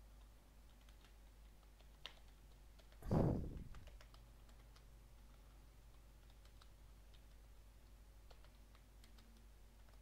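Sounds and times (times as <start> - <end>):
short low heavy thud: 3.0 - 3.7.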